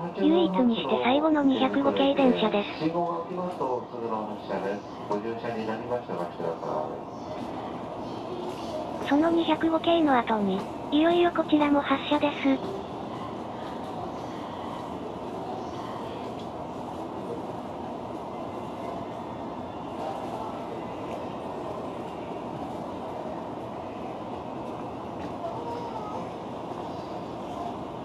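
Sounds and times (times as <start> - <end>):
railway station rumble and hiss: 0.0 - 28.0.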